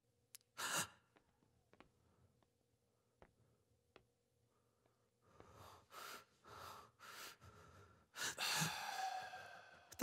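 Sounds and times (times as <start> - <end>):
man breathing heavily: 4.5 - 9.9.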